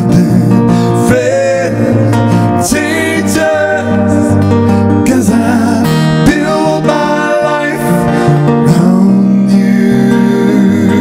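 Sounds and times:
acoustic guitar: 0.0 - 11.0
man singing: 0.0 - 11.0.

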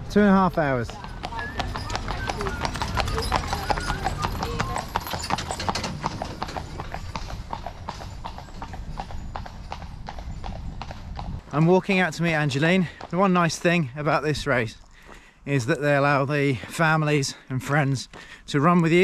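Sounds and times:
horse hooves clip-clopping: 0.2 - 13.7
faint voices: 0.8 - 5.5.

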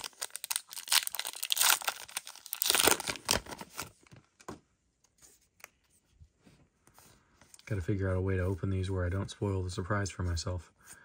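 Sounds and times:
wrapper tearing and crinkling: 0.0 - 3.9.

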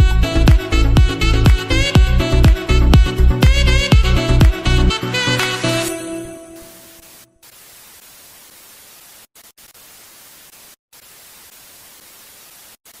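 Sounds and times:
tv static hiss: 6.5 - 13.0.

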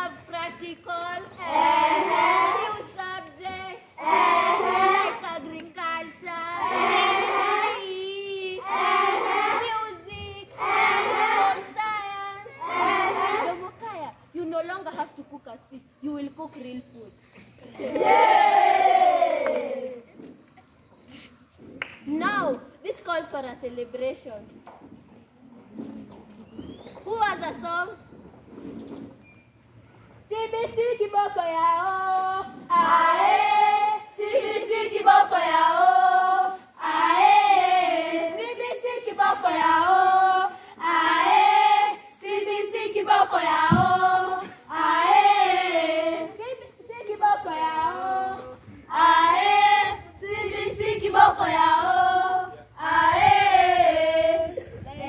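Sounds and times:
children singing unaccompanied: 0.8 - 13.8, 30.3 - 55.0
bird chirps: 25.6 - 27.2.

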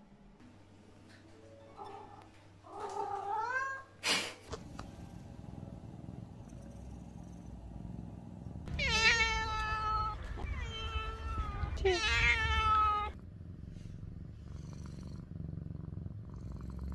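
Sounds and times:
cat purring: 4.5 - 16.9
cat complaining meows: 8.7 - 13.2.

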